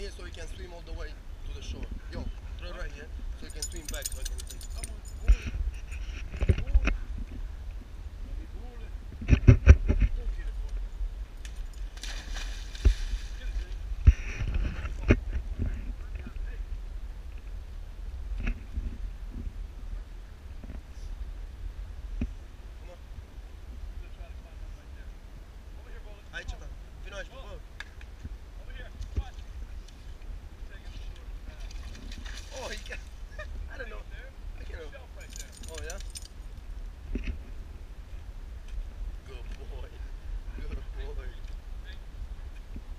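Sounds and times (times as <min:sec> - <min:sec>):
steady low rumble: 0:00.0 - 0:42.9
dog collar jingling: 0:03.4 - 0:05.4, 0:35.2 - 0:36.4
splashes in water: 0:12.0 - 0:13.6.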